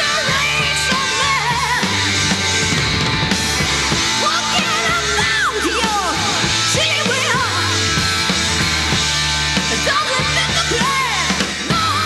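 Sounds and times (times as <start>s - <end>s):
live hard rock band: 0.0s - 12.0s.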